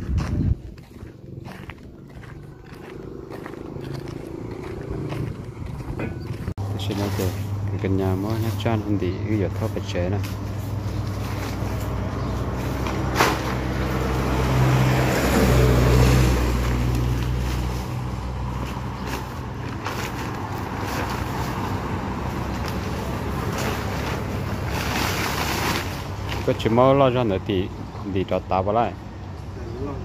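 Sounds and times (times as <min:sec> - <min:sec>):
motor vehicle passing: 0:00.2 - 0:27.6.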